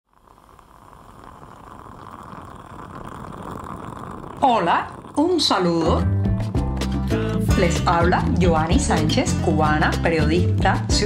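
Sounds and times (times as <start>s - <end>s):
coffee bubbling: 0.0s - 11.0s.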